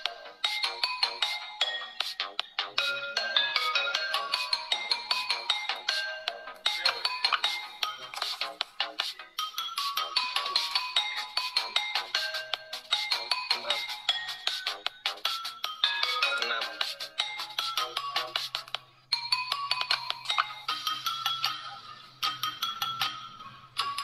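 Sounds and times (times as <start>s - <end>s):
phone ringtone melody: 0.0s - 24.0s.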